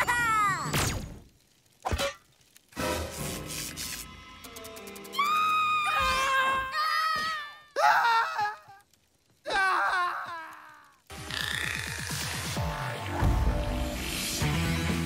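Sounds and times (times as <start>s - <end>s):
cartoon characters wailing: 5.1s - 8.8s.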